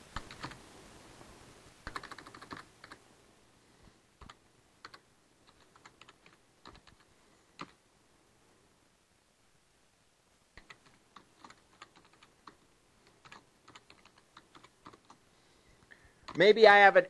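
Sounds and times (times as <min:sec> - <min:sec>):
computer keyboard typing: 0:00.2 - 0:00.6, 0:01.8 - 0:03.0, 0:04.2 - 0:07.8, 0:10.6 - 0:15.2.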